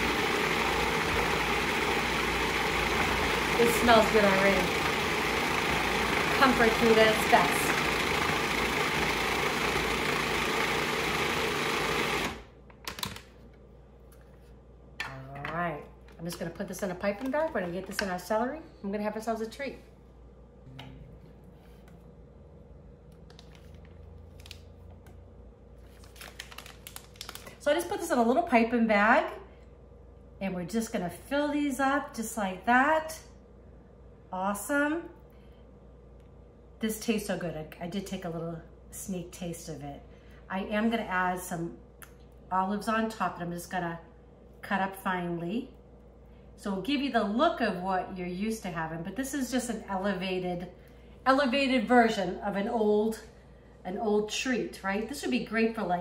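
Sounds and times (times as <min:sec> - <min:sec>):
food processor motor running: 0:00.0 - 0:12.5
low room hum: 0:12.2 - 0:56.0
plastic bag crinkling: 0:25.8 - 0:27.6.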